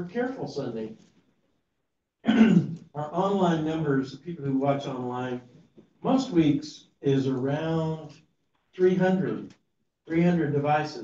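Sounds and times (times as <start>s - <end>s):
man clearing throat: 2.2s - 2.8s.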